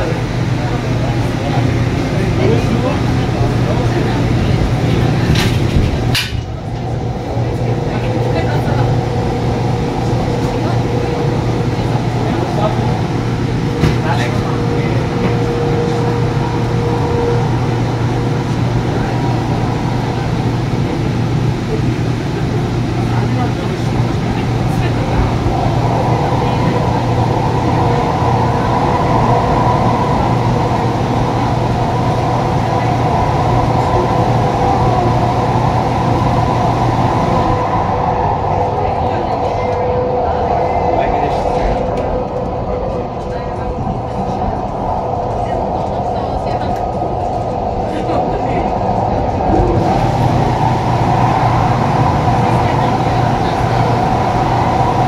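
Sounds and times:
train running on track: 0:00.0 - 0:55.0.

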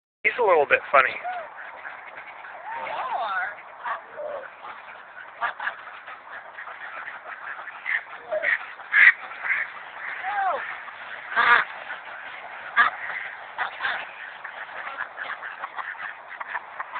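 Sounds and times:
ducks quacking: 0:00.3 - 0:16.9.

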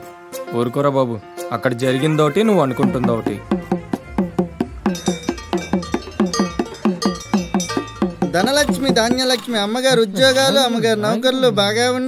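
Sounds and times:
folk drum and bell rhythm: 0:02.7 - 0:12.0.

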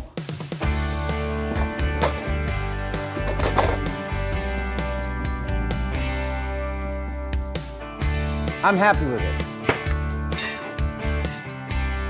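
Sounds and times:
background guitar music: 0:00.6 - 0:12.0
chairs rattling: 0:01.2 - 0:04.1.

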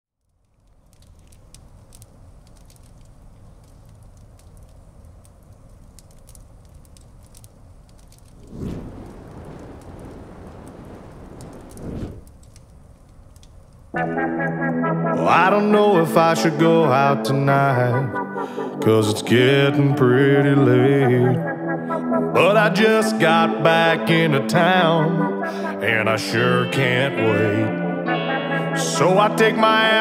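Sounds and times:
log fire crackling: 0:00.1 - 0:28.1, 0:28.8 - 0:30.0
rush of noise: 0:08.2 - 0:12.4.

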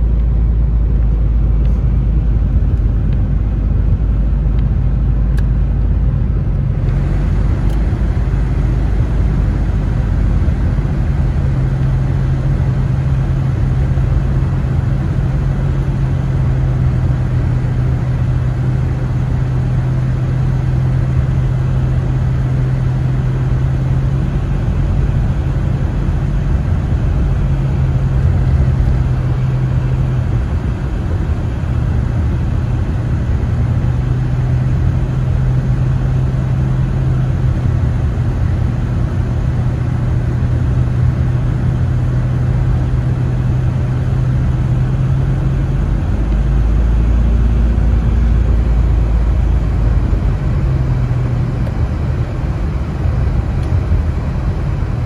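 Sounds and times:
car engine hum: 0:00.0 - 0:55.0
road and tyre noise: 0:00.0 - 0:55.0.

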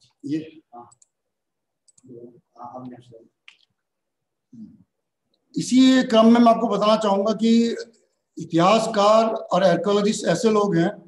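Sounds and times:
faint clicks: 0:00.9 - 0:01.2, 0:01.8 - 0:02.1.

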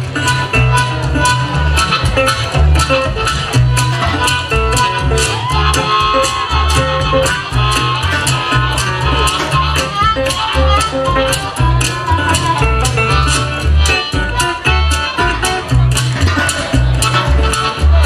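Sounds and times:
guitar: 0:00.0 - 0:18.0
harmonica: 0:00.0 - 0:18.0
upright double bass: 0:00.0 - 0:18.0
washboard scraped in rhythm: 0:00.0 - 0:18.0.

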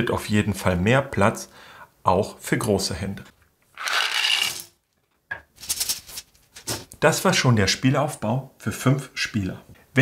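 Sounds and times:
wooden pieces clattering: 0:03.8 - 0:04.8.

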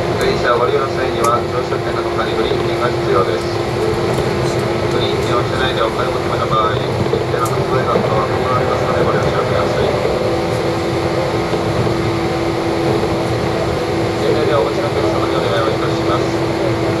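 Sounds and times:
train cabin rumble: 0:00.0 - 0:17.0.

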